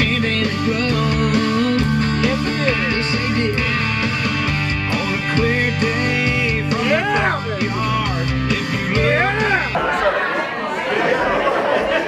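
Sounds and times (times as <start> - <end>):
music with singing voice: 0.0 - 9.8
many people chattering: 8.8 - 12.0.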